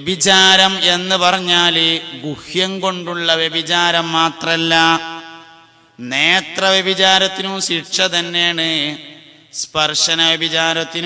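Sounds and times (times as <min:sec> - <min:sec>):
man chanting unaccompanied: 0:00.0 - 0:11.0.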